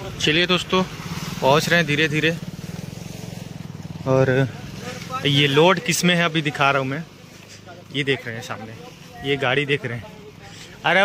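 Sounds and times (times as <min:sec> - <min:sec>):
engine idling: 0:00.0 - 0:11.0
man speaking: 0:04.0 - 0:11.0.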